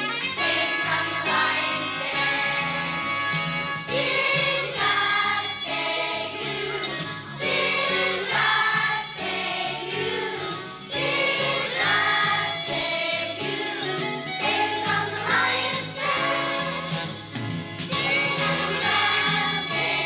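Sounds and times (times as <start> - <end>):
instrumental accompaniment: 0.0 - 20.0
children's choir singing: 0.3 - 2.8, 3.8 - 17.1, 17.9 - 20.0.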